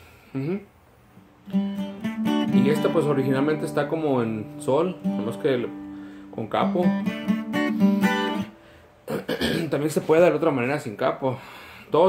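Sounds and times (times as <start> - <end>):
acoustic guitar strumming chords: 1.4 - 9.6.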